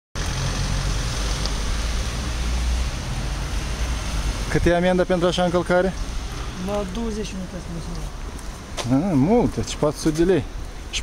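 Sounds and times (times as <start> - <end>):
road traffic rumble and hiss: 0.2 - 11.0.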